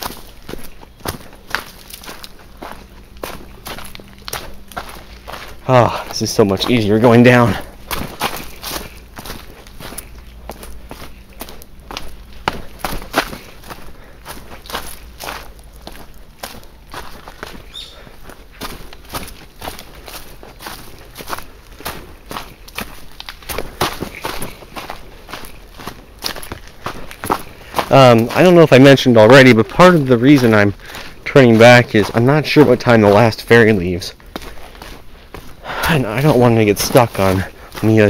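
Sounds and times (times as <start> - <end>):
footsteps crunching on leafy trail: 0.0 - 38.0.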